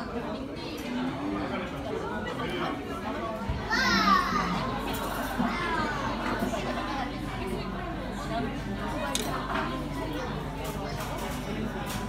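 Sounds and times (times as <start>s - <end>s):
diners chattering: 0.0s - 12.0s.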